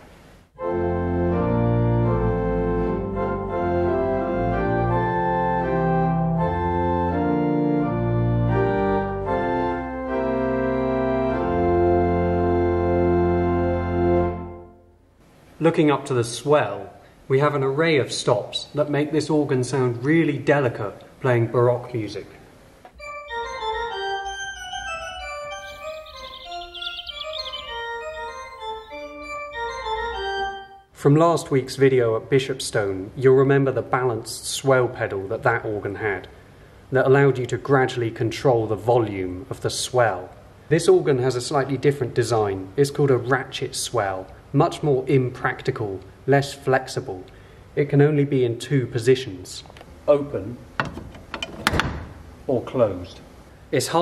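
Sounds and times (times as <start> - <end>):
pipe organ chords: 0.6 - 15.2, 22.9 - 31.0.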